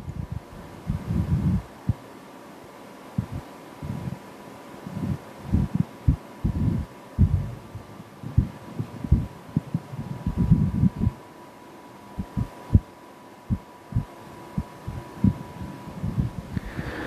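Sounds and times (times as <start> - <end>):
faint steady tone: 0.0 - 17.0
microphone handling thumps: 5.0 - 7.6, 8.3 - 11.2.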